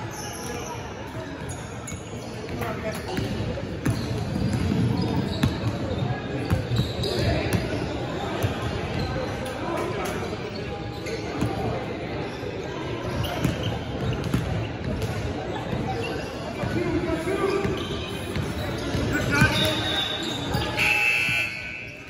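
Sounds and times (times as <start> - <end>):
voices of players and onlookers: 0.0 - 22.0.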